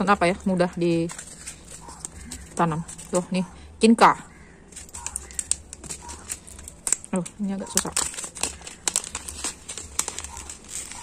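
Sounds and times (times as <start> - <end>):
seed packet crinkling: 0.0 - 3.4, 4.7 - 11.0.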